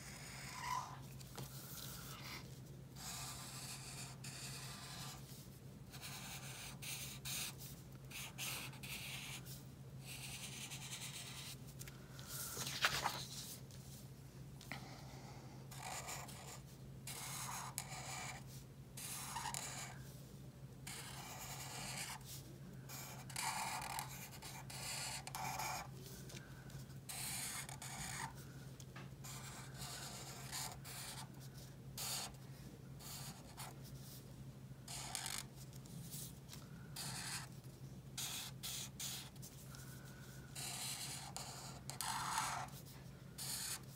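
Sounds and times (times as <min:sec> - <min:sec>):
marker rubbing on paper: 0:00.0 - 0:01.0, 0:01.7 - 0:11.6, 0:15.7 - 0:19.9, 0:20.9 - 0:25.9, 0:27.1 - 0:28.4, 0:29.2 - 0:32.4, 0:33.0 - 0:34.2, 0:34.9 - 0:36.4, 0:37.0 - 0:37.5, 0:38.2 - 0:39.6, 0:40.6 - 0:42.8, 0:43.4 - 0:43.9.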